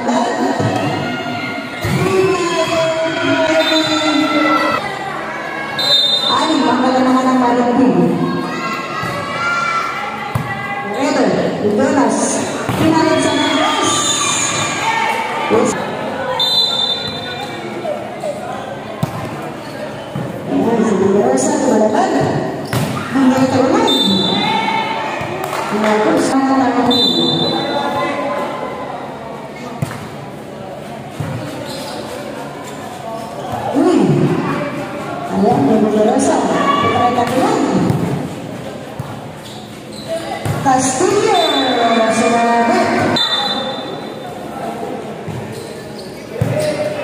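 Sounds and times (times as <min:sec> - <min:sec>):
people shouting in a gymnasium: 0:00.0 - 0:30.8, 0:31.4 - 0:47.0.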